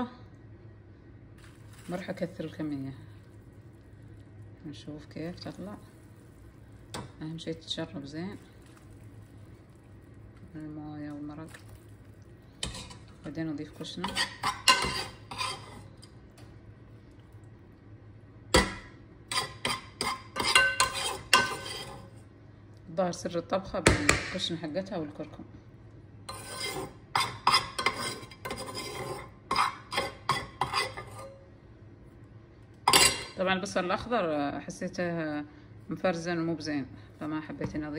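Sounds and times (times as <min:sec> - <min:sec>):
metal utensil scraping cookware: 0:12.6 - 0:13.1, 0:13.8 - 0:15.9, 0:19.3 - 0:22.1, 0:26.3 - 0:31.4.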